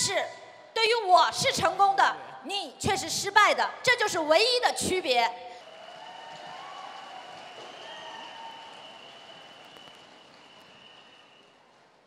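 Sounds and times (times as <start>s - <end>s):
audience applauding: 5.6s - 12.0s.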